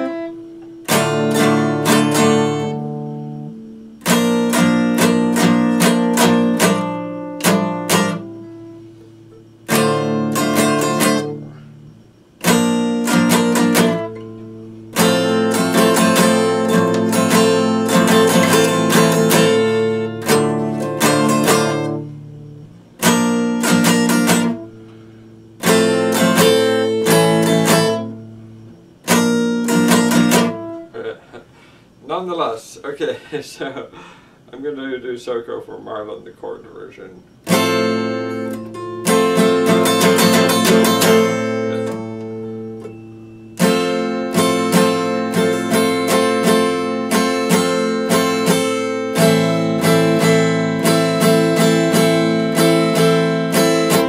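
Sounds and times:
strummed acoustic guitar chords: 0.0s - 32.6s, 35.6s - 54.0s.

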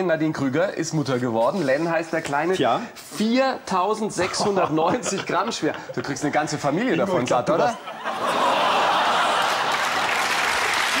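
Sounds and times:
audience applauding: 8.2s - 11.0s.

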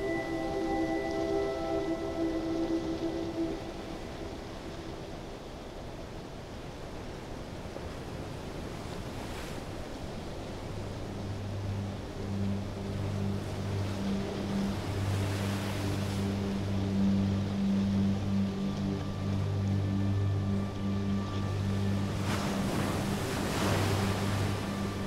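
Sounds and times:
low humming drone: 0.0s - 6.3s, 10.1s - 25.0s.

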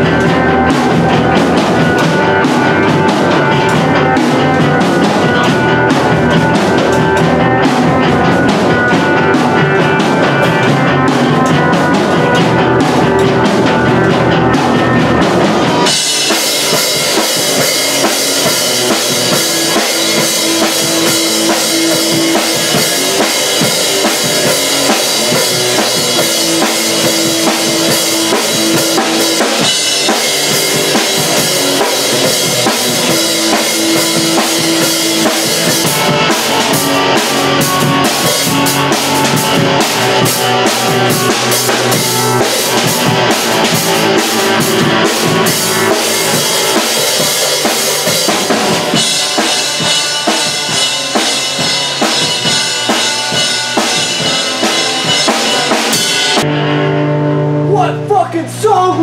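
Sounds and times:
electric guitars: 0.0s - 58.1s
drum kit: 0.0s - 59.0s.

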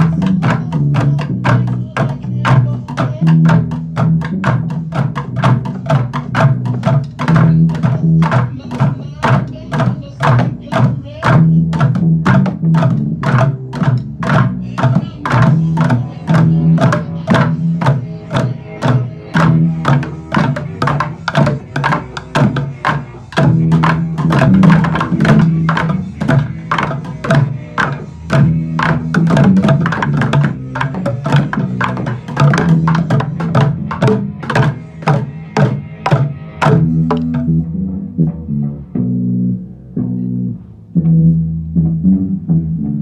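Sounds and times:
plastic buckets drummed with sticks: 0.0s - 37.8s.

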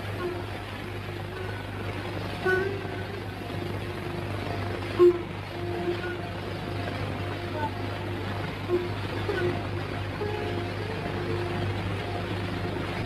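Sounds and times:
film soundtrack hum and hiss: 0.0s - 13.0s.

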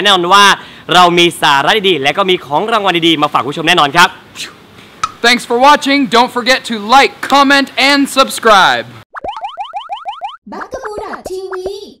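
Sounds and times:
rising boing effects: 9.1s - 11.3s
high-pitched cartoon voice calling: 10.5s - 12.0s.

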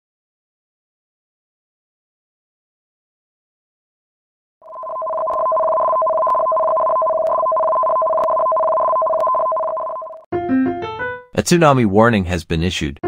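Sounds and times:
electronic two-tone alert tone: 4.6s - 10.2s.

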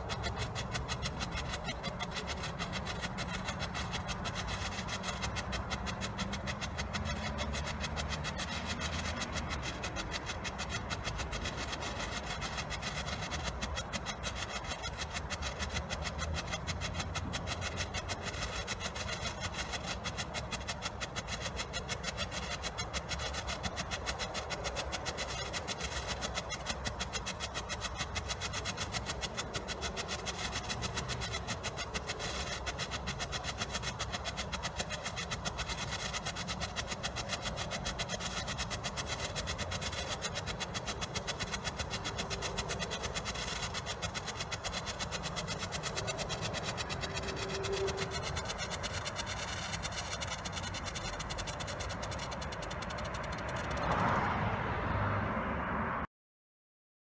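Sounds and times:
firework rapid popping: 0.0s - 54.4s.

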